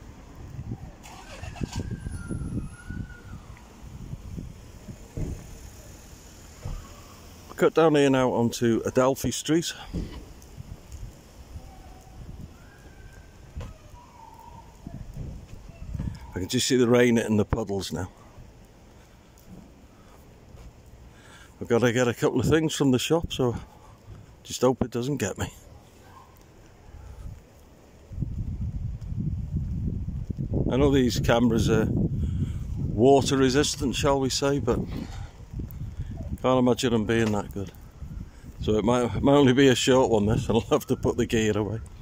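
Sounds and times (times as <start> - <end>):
wind rumble on microphone: 0.0 - 7.4, 9.9 - 16.5, 26.8 - 42.0
footsteps on wet pavement: 3.2 - 7.6, 9.6 - 30.6.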